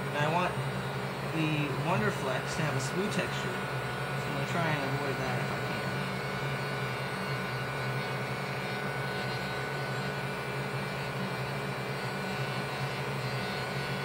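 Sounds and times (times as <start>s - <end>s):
heat gun whirring: 0.0s - 14.0s.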